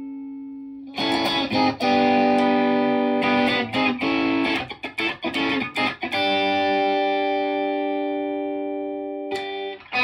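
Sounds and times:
overdriven electric guitar chord: 0.0 - 10.0.

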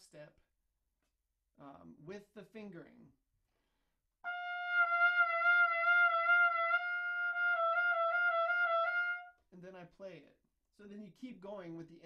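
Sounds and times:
trumpet holding a high tone: 4.2 - 9.4.

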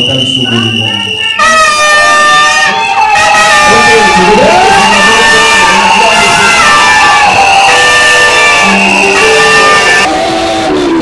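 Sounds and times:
crowd shouting and cheering: 0.0 - 11.0
loud music with sustained notes: 2.5 - 11.0.

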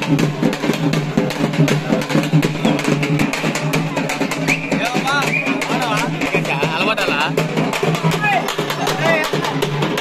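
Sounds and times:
music with fast drumming: 0.0 - 10.0.

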